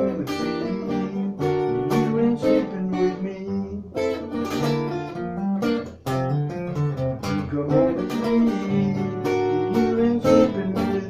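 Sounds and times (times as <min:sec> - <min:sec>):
acoustic guitar strumming chords: 0:00.0 - 0:11.0.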